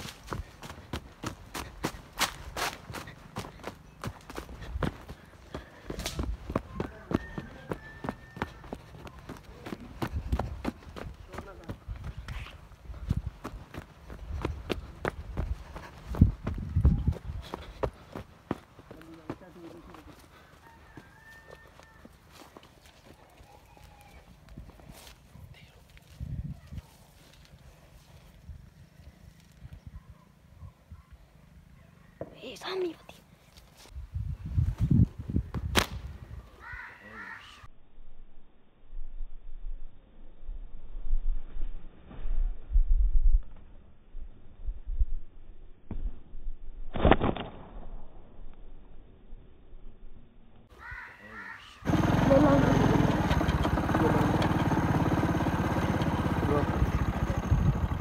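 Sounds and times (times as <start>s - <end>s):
footsteps in sandals on dirt path: 0.0s - 29.8s, 33.1s - 34.0s.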